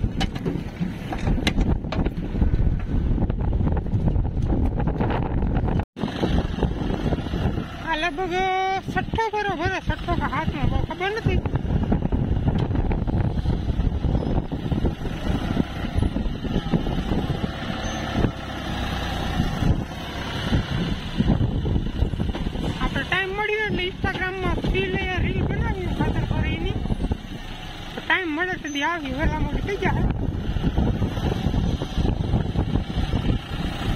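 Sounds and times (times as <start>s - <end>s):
tractor diesel engine under load: 0.0s - 33.9s.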